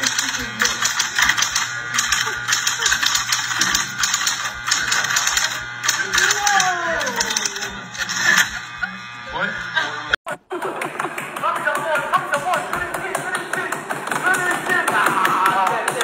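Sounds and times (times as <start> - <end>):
electric typewriter typing: 0.0 - 8.6, 10.6 - 16.0
voices in room: 0.0 - 16.0.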